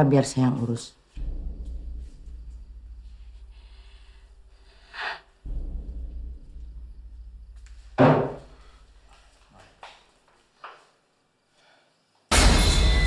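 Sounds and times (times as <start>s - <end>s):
pulsing low horror drone: 1.2s - 7.8s
short breathy burst: 3.4s - 5.4s.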